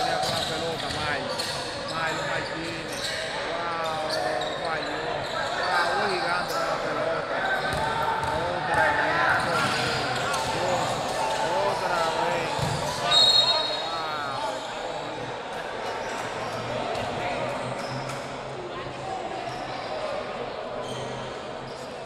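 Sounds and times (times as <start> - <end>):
spectators' voices and shouts: 0.0 - 22.0
sneakers squeaking on court: 0.1 - 13.9
basketball bouncing: 12.6 - 12.9.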